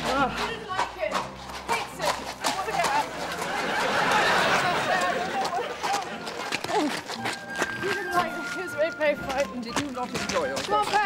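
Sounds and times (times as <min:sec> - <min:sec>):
hooves on gravel: 0:00.0 - 0:11.0
audience laughter: 0:03.0 - 0:06.7.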